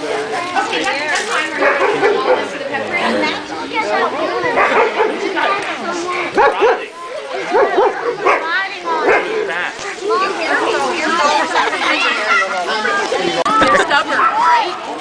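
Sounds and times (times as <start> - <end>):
people talking: 0.0 - 15.0
dogs barking: 1.5 - 2.7, 4.4 - 5.4, 6.3 - 9.6.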